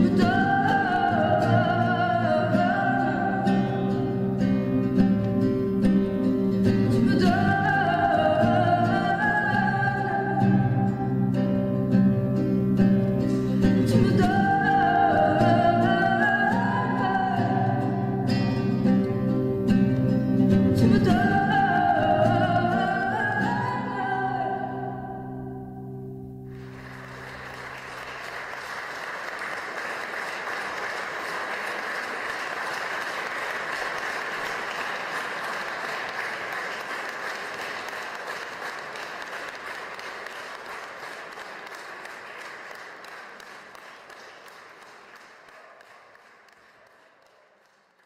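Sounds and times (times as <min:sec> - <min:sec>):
audience applauding: 0:26.5 - 0:48.0.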